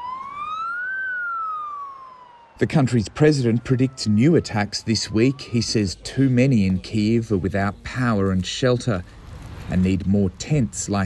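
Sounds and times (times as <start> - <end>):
emergency vehicle siren wailing: 0.0 - 8.7.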